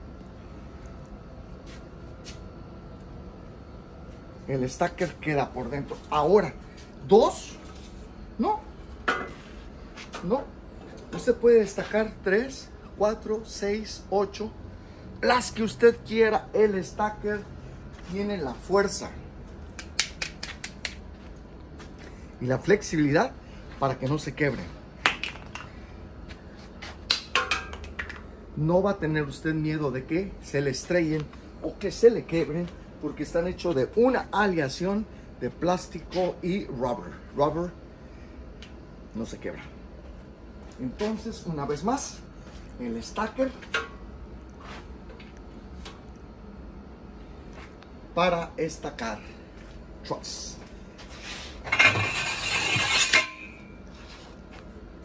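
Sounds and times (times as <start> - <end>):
metal tubing clinking and scraping: 51.6 - 53.8.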